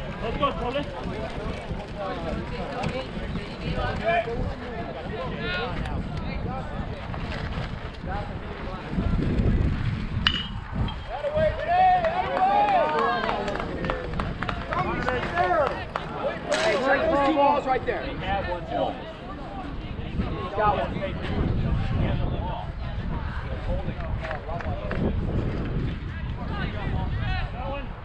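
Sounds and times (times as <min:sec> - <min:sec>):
scattered voices: 0:00.0 - 0:28.0
crowd shouting and cheering: 0:10.4 - 0:24.9.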